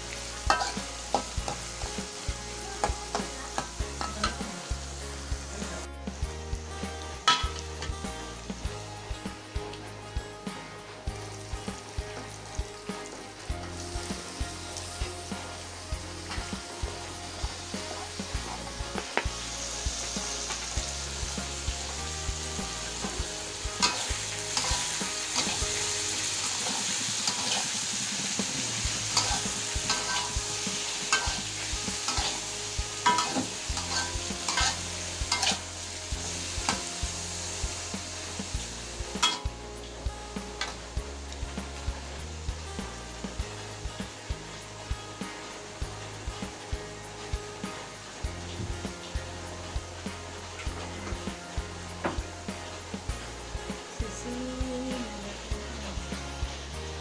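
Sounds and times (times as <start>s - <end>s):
metal spatula scraping wok: 0.0s - 5.9s, 7.1s - 8.6s, 14.1s - 40.9s
food sizzling in a wok: 0.0s - 57.0s.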